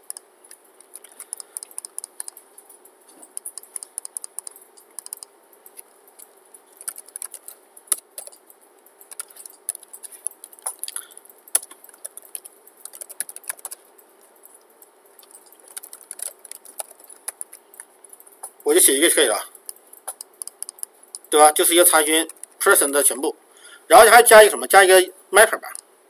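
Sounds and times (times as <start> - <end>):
keyboard typing: 0.0 - 22.7.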